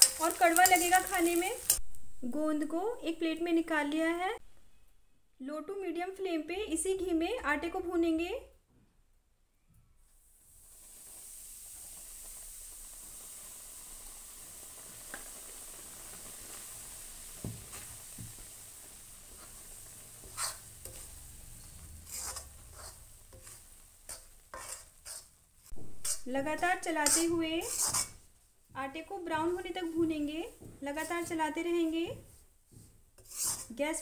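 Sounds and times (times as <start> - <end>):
steel spoon scraping pan: 0.0 - 1.8, 19.2 - 28.3, 33.2 - 33.8
flour sizzling in hot ghee: 0.0 - 4.0, 10.0 - 34.0.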